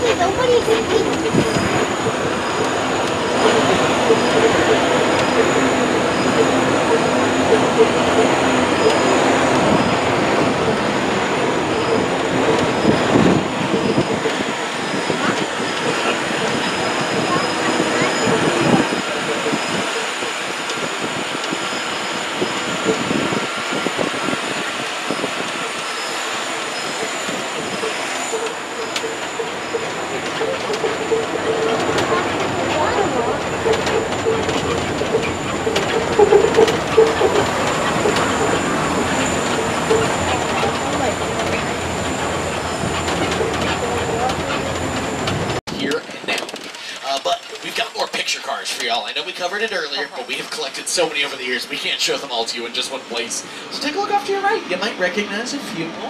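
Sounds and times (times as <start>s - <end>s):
steady hum: 0.0s - 47.0s
tram motor and tyres rumbling: 0.0s - 56.0s.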